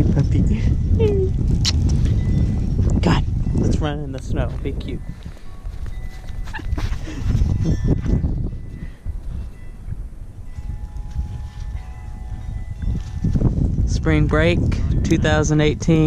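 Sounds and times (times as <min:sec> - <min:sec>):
microphone handling rumble: 0:00.0 - 0:16.0.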